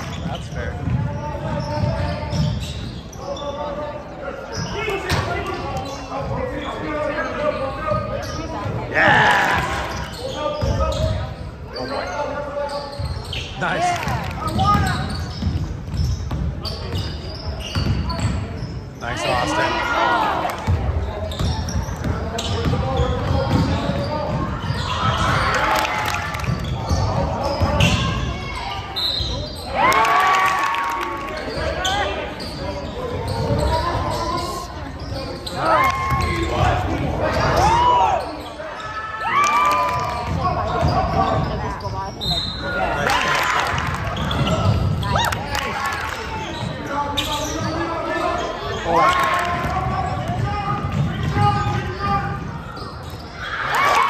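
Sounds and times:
spectators' voices echoing: 0:00.0 - 0:54.0
loud shout: 0:08.9 - 0:09.9, 0:29.7 - 0:31.3, 0:35.6 - 0:40.2, 0:53.4 - 0:54.0
basketball bouncing on wooden floor: 0:14.5 - 0:17.1, 0:17.7 - 0:18.4, 0:20.7 - 0:25.4.

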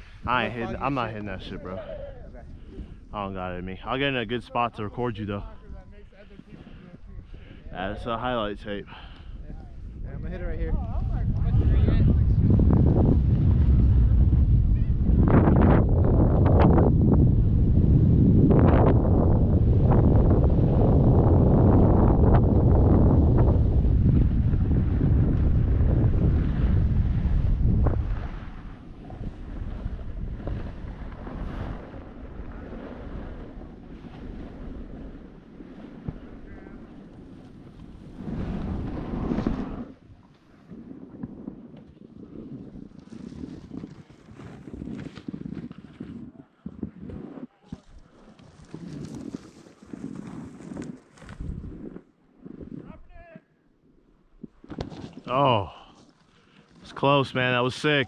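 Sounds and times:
wind noise on microphone: 0:00.0 - 0:53.4.

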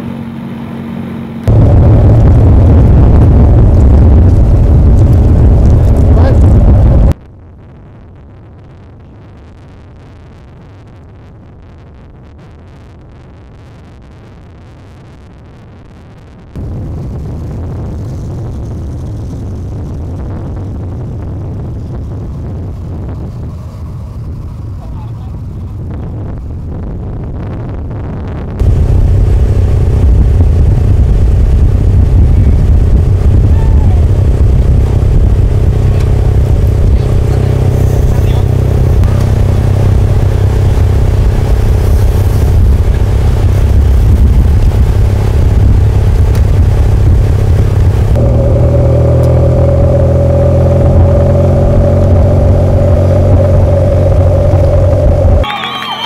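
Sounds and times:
vehicle engine drone: 0:00.0 - 0:13.0, 0:16.0 - 0:56.0
quiet engine rumble: 0:00.0 - 0:14.2, 0:14.9 - 0:55.5.

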